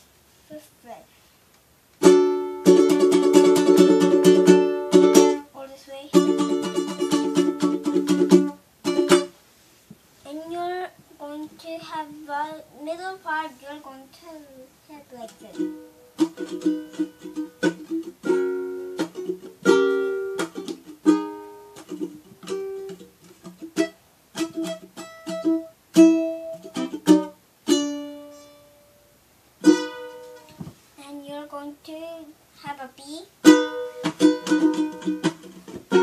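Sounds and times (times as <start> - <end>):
ukulele picking and strumming: 2.0 - 5.5, 6.1 - 9.4, 15.2 - 28.9, 29.6 - 30.8, 33.4 - 36.0.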